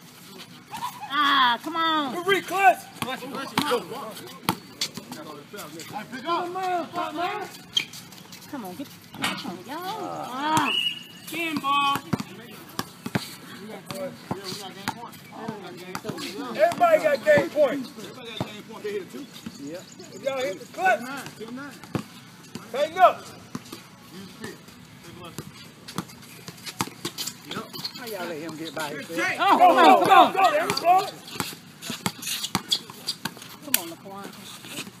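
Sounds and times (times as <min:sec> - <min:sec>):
faint players' voices: 0:00.0 - 0:35.0
basketball bouncing on asphalt: 0:03.0 - 0:05.2, 0:09.9 - 0:17.6, 0:18.2 - 0:18.6, 0:21.1 - 0:28.7, 0:29.8 - 0:35.0
basketball bouncing on court: 0:11.5 - 0:13.3, 0:13.9 - 0:17.6, 0:21.8 - 0:22.7.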